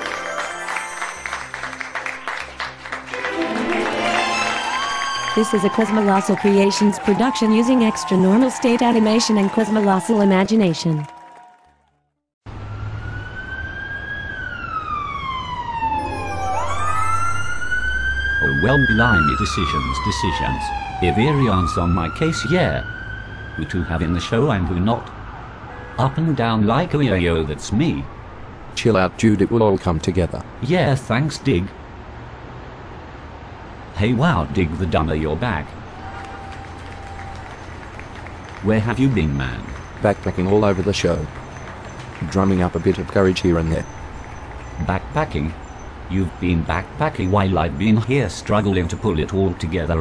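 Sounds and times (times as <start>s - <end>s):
emergency vehicle siren wailing: 3.1s - 11.7s, 12.5s - 28.3s, 35.4s - 50.0s.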